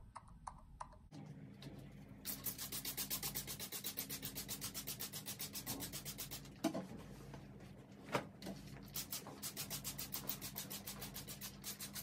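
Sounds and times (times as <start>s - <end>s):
spray bottle hissing spurts: 2.3s - 6.5s, 8.9s - 12.0s.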